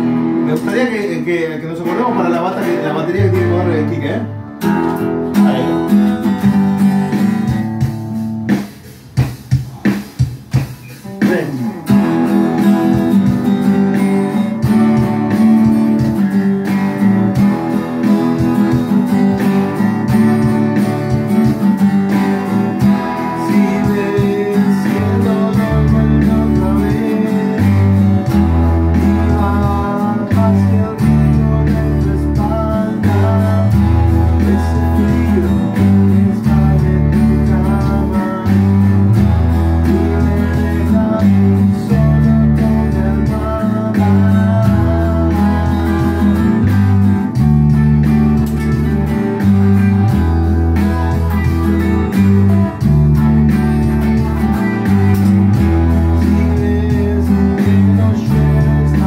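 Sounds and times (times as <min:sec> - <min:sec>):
electric bass notes: 0:00.0 - 0:59.0
electric guitars playing: 0:00.0 - 0:59.0.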